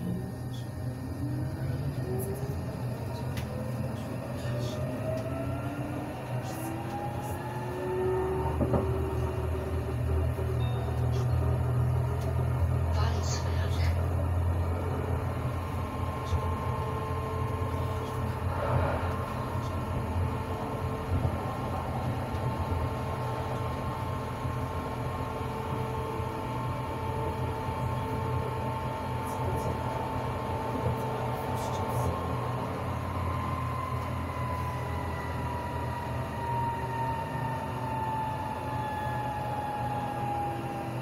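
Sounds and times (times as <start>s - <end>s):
traction motor whine: 0.0s - 41.0s
tram rumbling on tracks: 0.0s - 41.0s.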